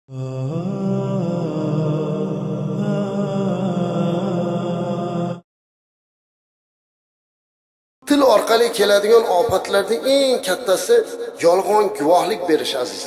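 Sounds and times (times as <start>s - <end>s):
person chanting: 0.1s - 5.5s, 8.0s - 13.0s.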